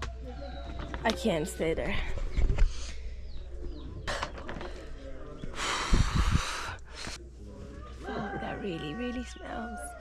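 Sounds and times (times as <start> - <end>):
rush of breathy noise: 5.5 - 7.2.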